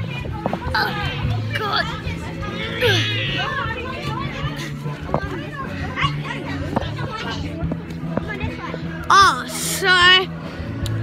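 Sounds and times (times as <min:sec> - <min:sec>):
children's voices: 0:00.0 - 0:10.3.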